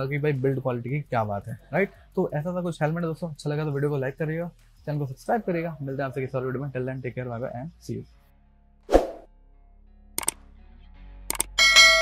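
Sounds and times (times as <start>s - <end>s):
double mouse click: 11.3s - 11.6s
bright bell ding: 11.6s - 12.0s.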